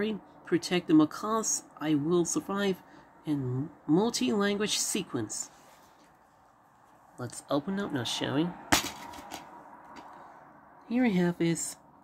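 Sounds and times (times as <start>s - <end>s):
person speaking: 0.0s - 5.7s, 7.2s - 8.6s, 10.9s - 11.8s.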